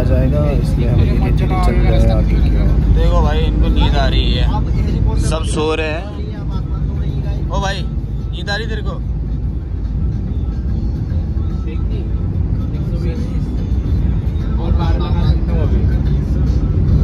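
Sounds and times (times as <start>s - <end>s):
car engine and tyres rumbling: 0.0s - 17.0s.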